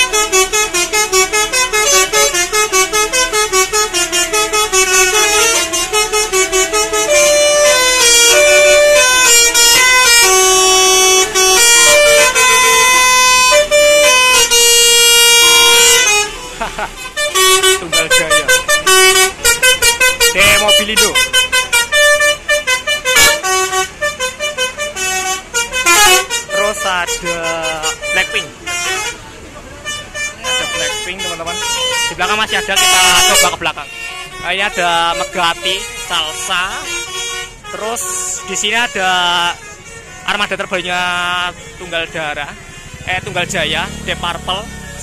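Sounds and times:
bus horn playing a tune: 0:00.0 - 0:45.0.

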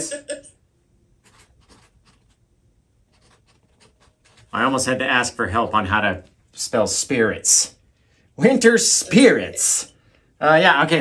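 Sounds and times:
marker scratching on canvas: 0:01.2 - 0:02.4, 0:03.1 - 0:05.0.

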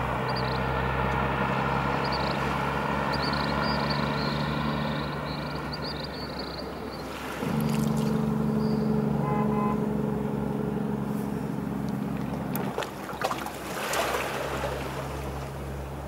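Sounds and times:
deep mechanical drone: 0:00.0 - 0:13.6.

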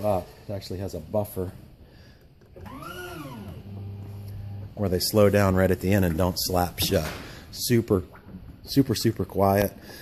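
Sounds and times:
hydraulic pump motor whine: 0:02.4 - 0:05.1.

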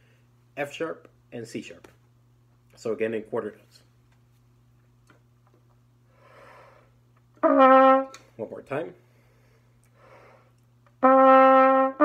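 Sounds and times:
low steady hum: 0:00.0 - 0:12.0
faint breath in: 0:06.1 - 0:07.0, 0:09.0 - 0:10.6.

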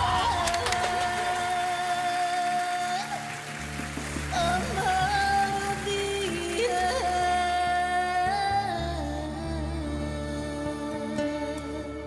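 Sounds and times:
woman singing a long high note: 0:00.0 - 0:03.3.

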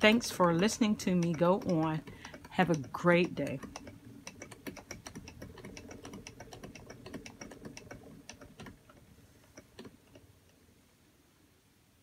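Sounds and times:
spinning wheel clicking: 0:00.0 - 0:10.6
spinning wheel whir: 0:00.0 - 0:10.6.

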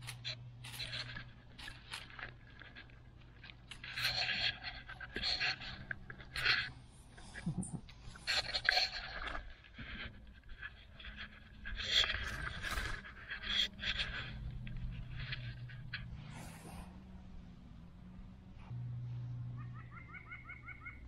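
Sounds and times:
dry leaves rustling: 0:00.0 - 0:05.8
low steady hum: 0:00.0 - 0:21.0.

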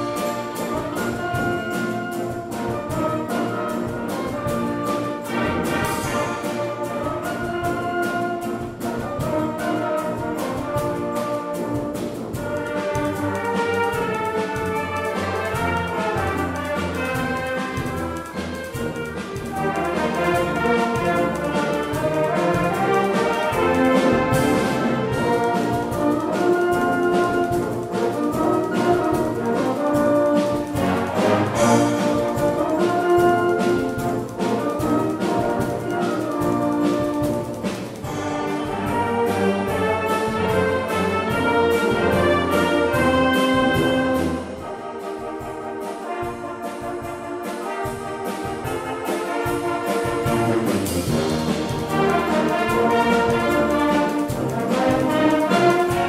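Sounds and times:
wind band playing: 0:00.0 - 0:56.0.

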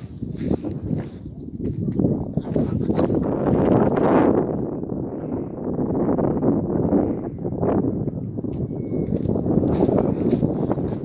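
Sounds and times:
footsteps on muddy track: 0:00.0 - 0:03.2, 0:09.1 - 0:11.0.

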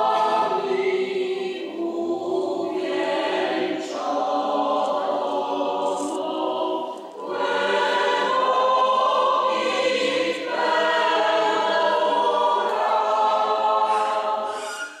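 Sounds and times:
choir singing a sacred song: 0:00.0 - 0:15.0.

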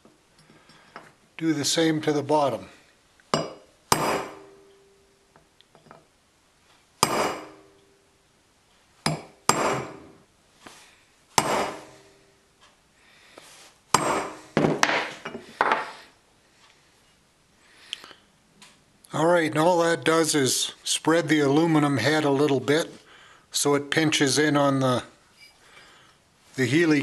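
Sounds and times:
hammer striking steel punch on metal: 0:03.3 - 0:04.9, 0:07.0 - 0:07.8, 0:09.1 - 0:10.2, 0:11.4 - 0:12.1, 0:13.9 - 0:15.1.

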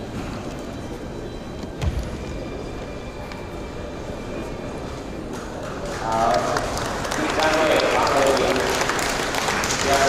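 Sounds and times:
sports hall background noise: 0:00.0 - 0:10.0.

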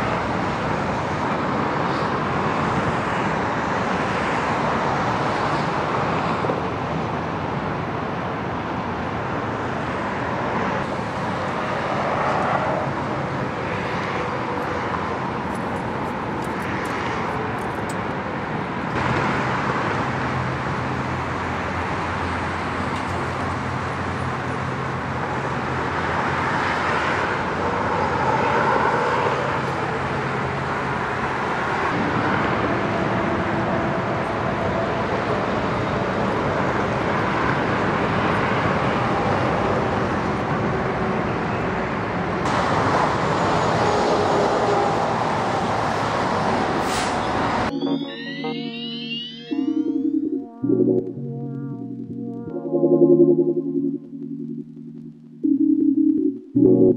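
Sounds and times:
low traffic hum: 0:00.0 - 0:56.9
vehicles passing: 0:00.0 - 0:56.9.

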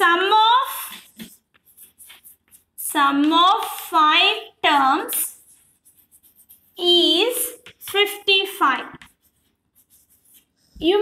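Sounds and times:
woman speaking: 0:00.0 - 0:01.1, 0:02.8 - 0:05.4, 0:06.8 - 0:09.1, 0:10.8 - 0:11.0
chalk scratching on chalkboard: 0:00.0 - 0:04.2, 0:04.8 - 0:11.0.

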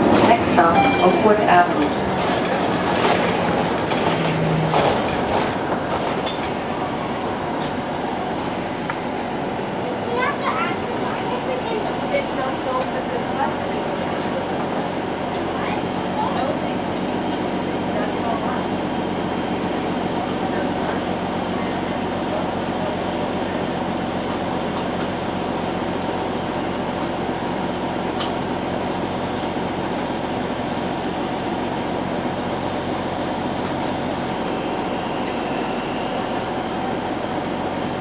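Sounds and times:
streetcar hum and rumble: 0:00.0 - 0:38.0.

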